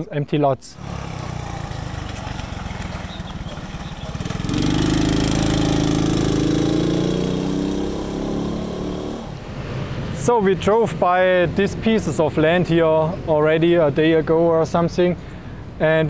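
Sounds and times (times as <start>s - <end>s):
minibike engine passing: 0.8s - 9.9s.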